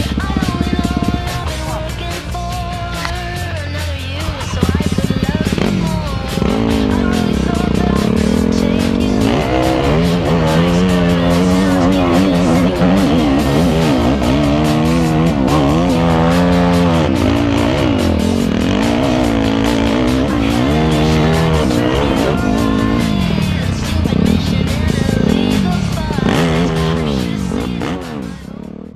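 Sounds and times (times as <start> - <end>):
dirt bike engine revving: 0.0 - 28.9
music: 0.0 - 28.9.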